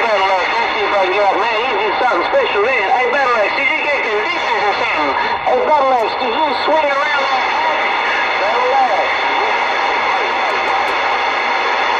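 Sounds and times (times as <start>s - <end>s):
faint garbled radio voices: 0.0s - 11.9s
radio static hiss: 4.3s - 11.9s.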